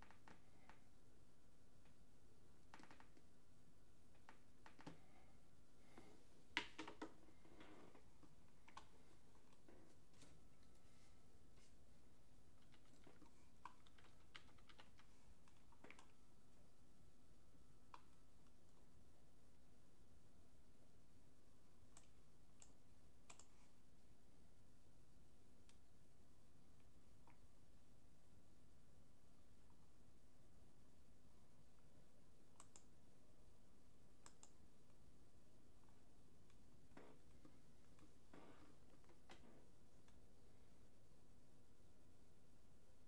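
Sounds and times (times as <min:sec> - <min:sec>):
faint low hum: 0:00.0 - 0:43.0.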